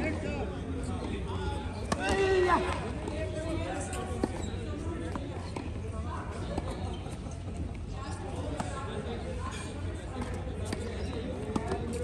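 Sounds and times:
tennis ball bouncing on court: 0:01.8 - 0:03.2, 0:09.9 - 0:12.0.

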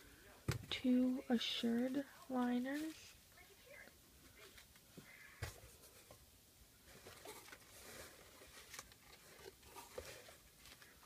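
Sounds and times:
wrapped pads rustling: 0:06.8 - 0:11.0.

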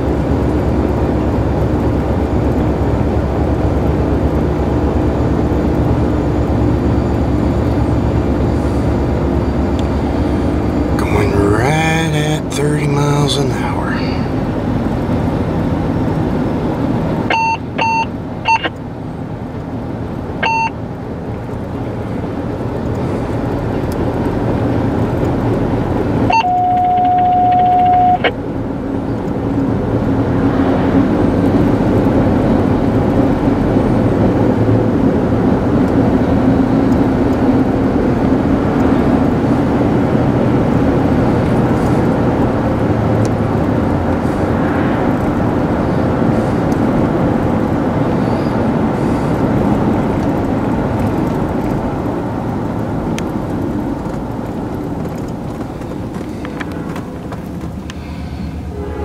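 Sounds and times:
car road and engine noise: 0:00.0 - 0:59.0
short electronic beeps: 0:17.3 - 0:18.7, 0:20.4 - 0:20.8, 0:26.3 - 0:28.3
steady electronic tone: 0:26.3 - 0:28.3.

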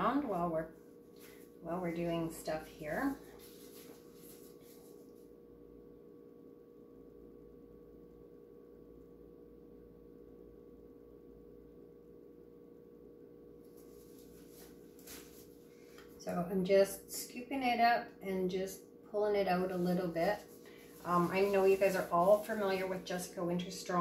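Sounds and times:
faint steady hum: 0:00.0 - 0:24.0.

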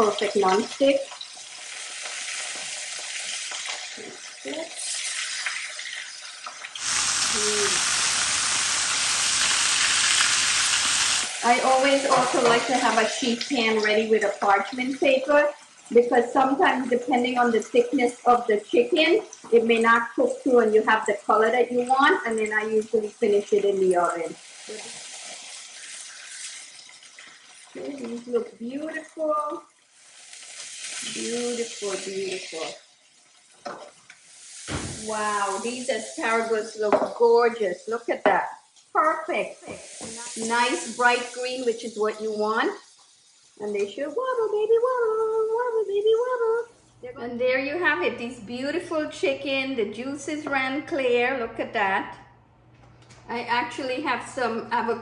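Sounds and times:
chicken sizzling in grill pan: 0:00.0 - 0:17.8, 0:21.6 - 0:46.5.

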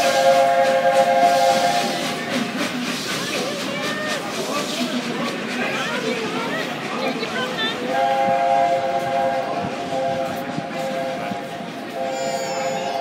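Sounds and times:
steam locomotive whistle blasts: 0:00.0 - 0:02.2, 0:07.9 - 0:13.0.

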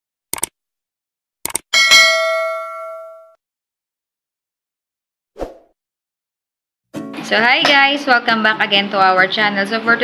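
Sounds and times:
bright bell ding: 0:01.8 - 0:03.4.

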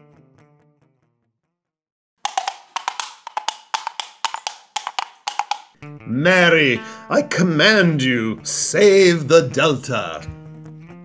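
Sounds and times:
wood block knocks: 0:02.2 - 0:05.8.

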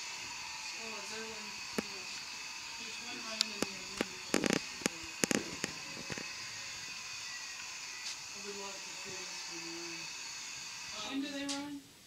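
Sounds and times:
background hiss: 0:00.0 - 0:12.0
sharp clicks and crackles: 0:01.7 - 0:02.0, 0:03.4 - 0:06.3.

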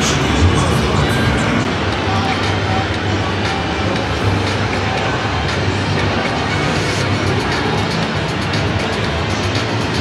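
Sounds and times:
low hum: 0:00.0 - 0:09.3
many voices blending: 0:00.0 - 0:10.0.

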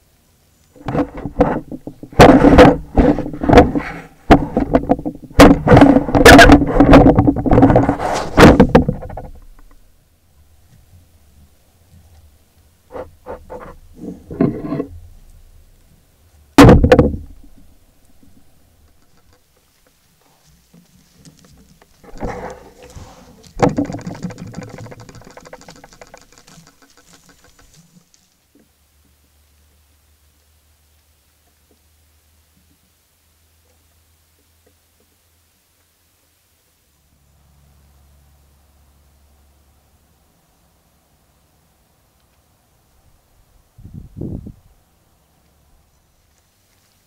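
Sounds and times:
fur scraping against microphone: 0:00.8 - 0:04.7, 0:05.5 - 0:09.2, 0:20.2 - 0:28.2.

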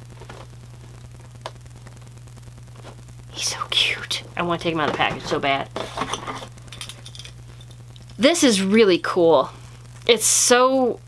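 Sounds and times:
low electrical hum: 0:00.0 - 0:11.0
small objects clicking: 0:06.7 - 0:08.2.

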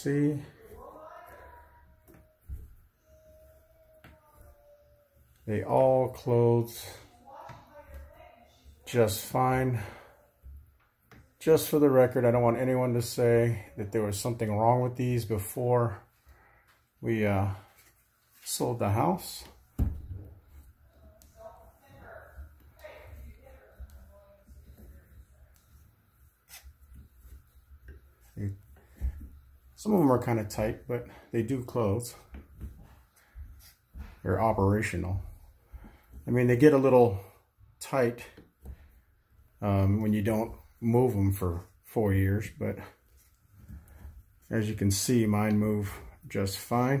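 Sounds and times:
faint thin steady whine: 0:01.9 - 0:47.0.

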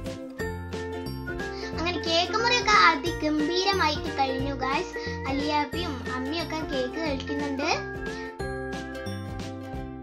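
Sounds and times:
bell-like tune over bass line: 0:08.4 - 0:09.4.

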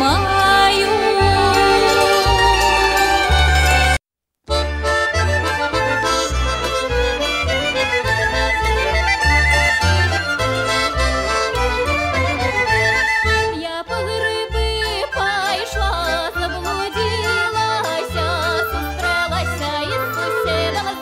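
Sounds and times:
accordion folk music: 0:00.0 - 0:21.0
pulsing bass: 0:04.6 - 0:13.6.

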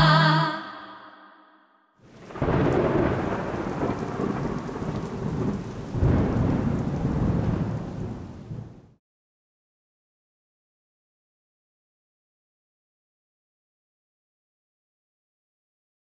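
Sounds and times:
steady rain: 0:02.0 - 0:09.0
thunder rolling: 0:02.1 - 0:09.0.

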